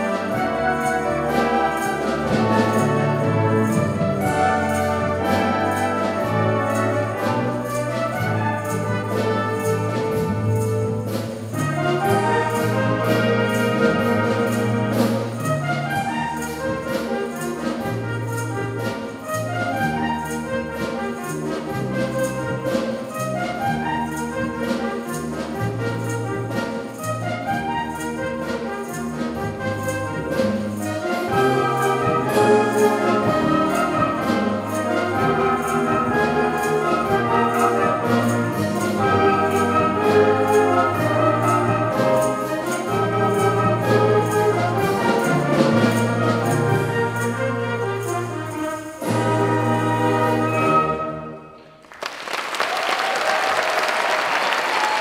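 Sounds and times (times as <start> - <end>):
wind band playing chords: 0.0 - 55.0.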